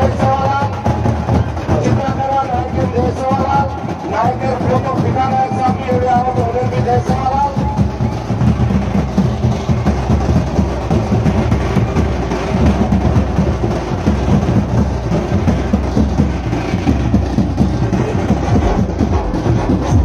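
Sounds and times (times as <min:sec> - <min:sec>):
crowd: 0:00.0 - 0:20.0
loud fast drumming: 0:00.0 - 0:20.0.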